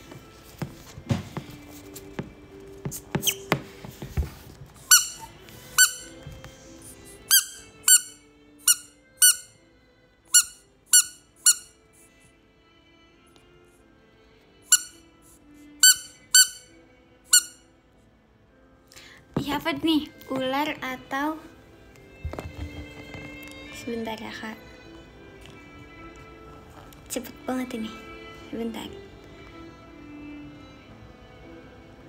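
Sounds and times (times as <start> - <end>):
rubber duck toy squeaking: 3.2 - 3.5, 4.8 - 6.2, 7.2 - 9.5, 10.3 - 11.8, 14.7 - 15.0, 15.8 - 16.7, 17.3 - 17.6.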